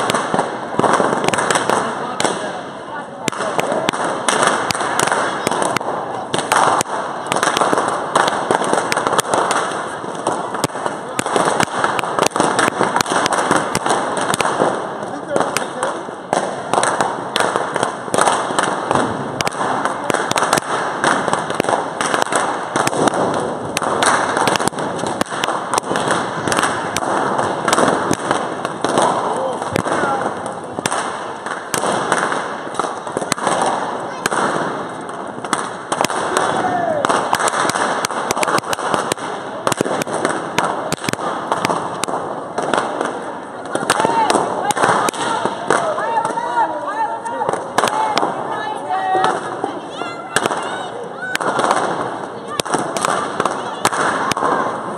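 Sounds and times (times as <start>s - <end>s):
crowd chatter: 0.0s - 54.9s.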